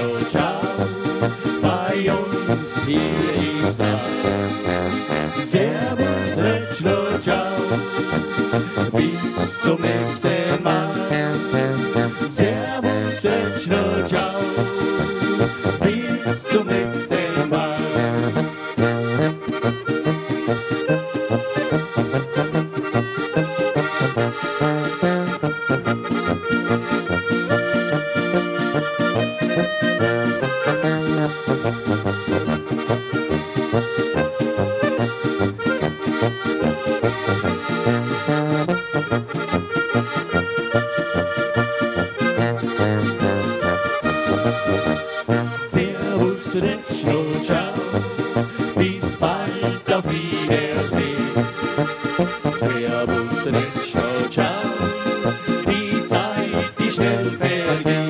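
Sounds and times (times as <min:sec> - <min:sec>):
electric guitar: 0:00.0 - 0:56.8
button accordion: 0:00.0 - 0:58.0
clarinet: 0:00.0 - 0:58.0
tuba bass line: 0:00.0 - 0:58.0.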